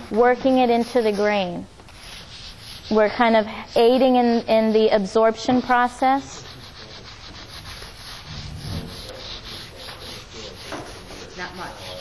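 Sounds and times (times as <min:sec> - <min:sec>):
abrasive scrubbing on wood: 0:00.2 - 0:12.0.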